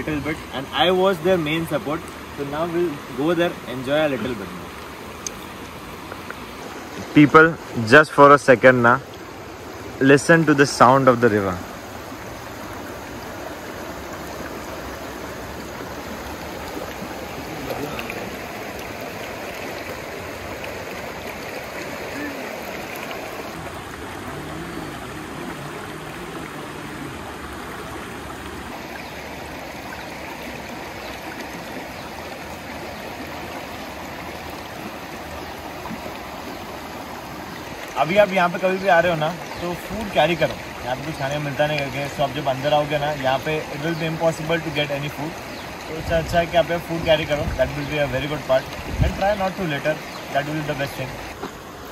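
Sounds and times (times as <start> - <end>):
river rushing over rocks: 0.0 - 51.9.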